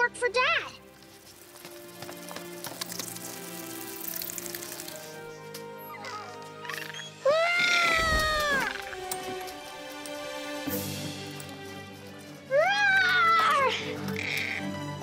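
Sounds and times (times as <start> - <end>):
background score music: 0.0 - 15.0.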